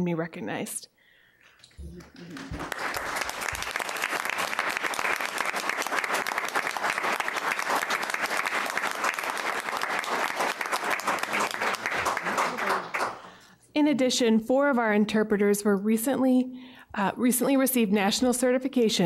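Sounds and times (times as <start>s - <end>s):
audience applause: 1.7s - 13.4s.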